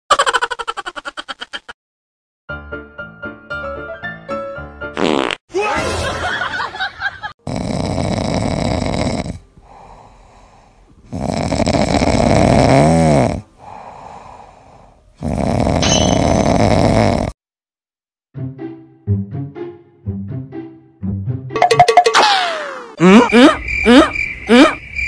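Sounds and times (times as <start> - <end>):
cat snoring: 7.4 - 17.4
cat breathing: 9.5 - 11.1, 13.4 - 15.2
whistling snore: 15.2 - 17.4.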